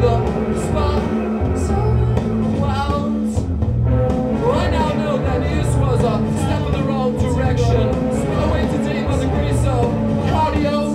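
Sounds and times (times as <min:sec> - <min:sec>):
live rock band playing: 0:00.0 - 0:10.9.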